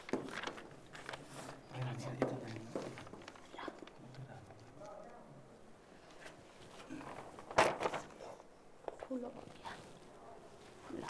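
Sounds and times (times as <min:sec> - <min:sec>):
paper chart rustling: 0:00.0 - 0:05.2, 0:06.0 - 0:11.0.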